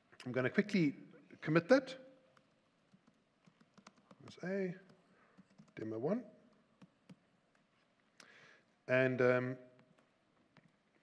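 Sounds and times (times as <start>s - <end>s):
laptop keyboard typing: 2.9s - 4.4s, 5.4s - 5.8s.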